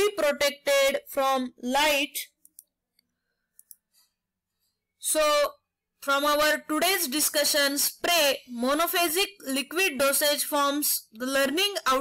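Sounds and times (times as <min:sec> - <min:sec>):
computer mouse clicks: 0:02.3 - 0:04.0.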